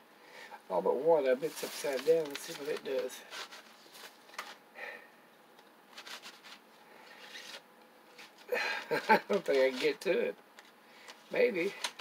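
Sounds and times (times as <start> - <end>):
pencils shifting in cardboard box: 1.4 - 4.6, 8.9 - 10.0.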